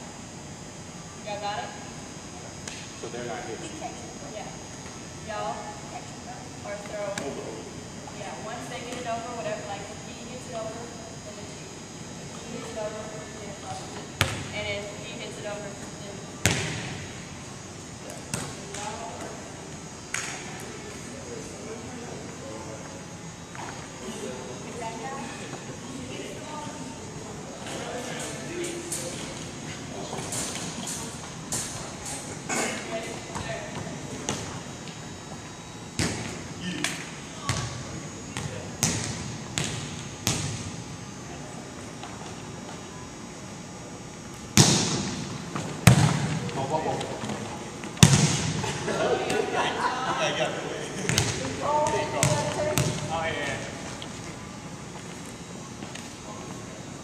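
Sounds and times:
volleyballs hit and bouncing: 44.5 - 46.5.

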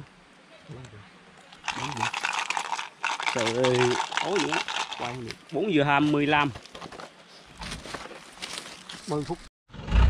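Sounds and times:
bark and brush crackling: 1.3 - 9.5.

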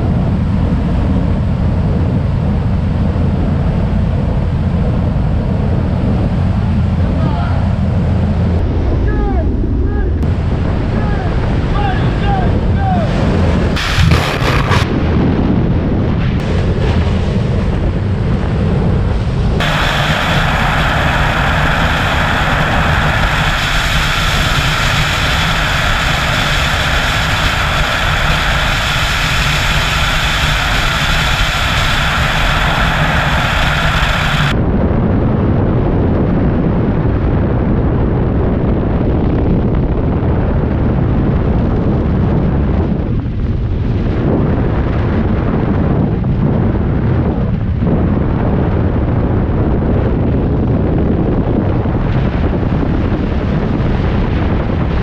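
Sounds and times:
freefall wind buffeting microphone: 0.0 - 55.0.

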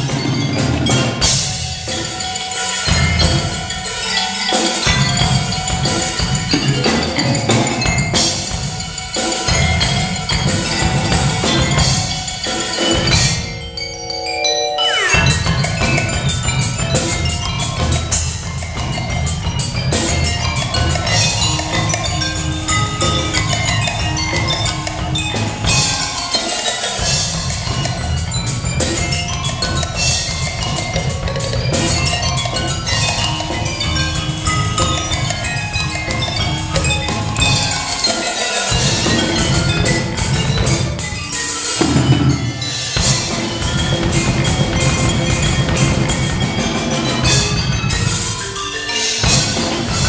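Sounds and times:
driving drum kit beat: 0.0 - 50.0
mallet instruments playing melody: 0.0 - 50.0.

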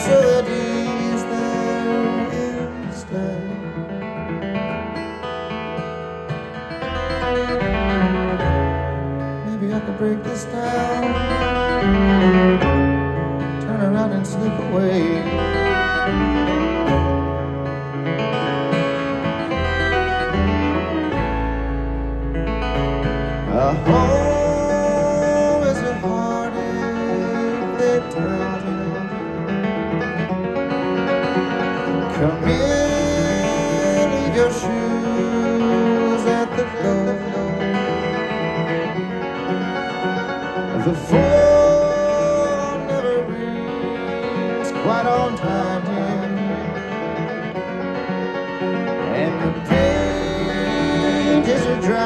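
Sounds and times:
man singing: 0.0 - 4.5, 9.2 - 17.6, 23.3 - 29.9, 31.8 - 39.0, 40.6 - 47.7, 49.0 - 52.0
acoustic guitar picked chords: 0.0 - 52.0.

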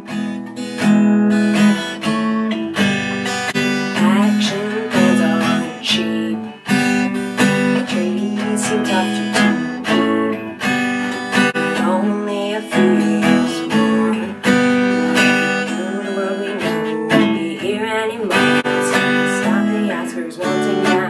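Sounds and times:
strummed acoustic guitar: 0.0 - 21.0
woman singing folk ballad: 0.0 - 21.0.

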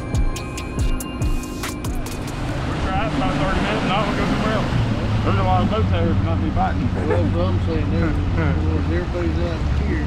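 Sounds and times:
outboard motor drone: 0.0 - 10.0
wind and water rushing: 2.2 - 10.0
man talking: 2.6 - 10.0.

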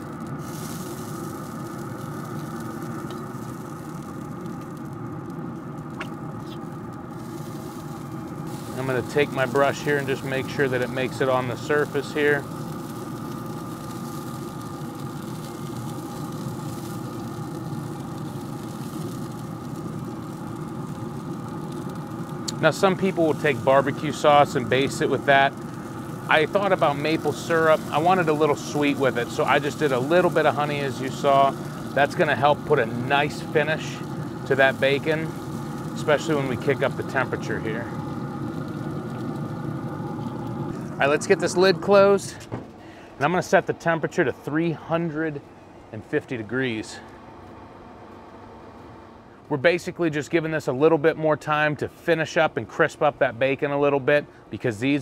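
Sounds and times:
faint steady tones: 0.0 - 51.3
pellet grill fan humming: 0.0 - 55.0.

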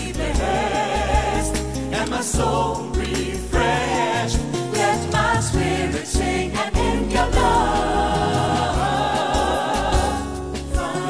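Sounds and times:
choir singing a held chord: 0.0 - 11.0.

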